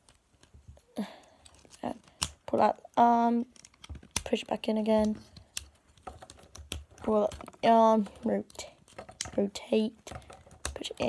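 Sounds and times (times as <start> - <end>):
plastic toy clicks: 8.5 - 11.0.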